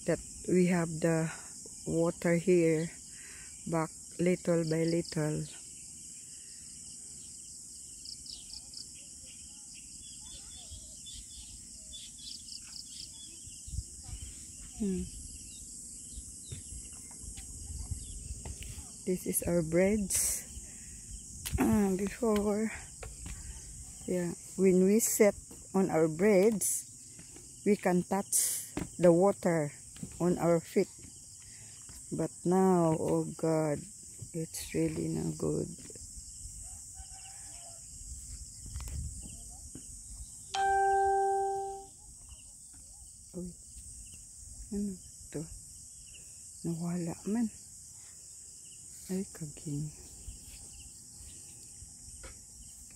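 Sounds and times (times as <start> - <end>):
crickets droning: 0.0 - 52.9
insects chirping: 0.0 - 52.9
bell-like ringing tone: 40.6 - 41.9.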